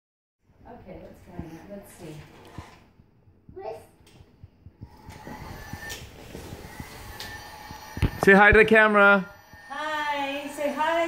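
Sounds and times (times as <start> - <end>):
toy vacuum cleaner whirring: 4.8 - 11.0.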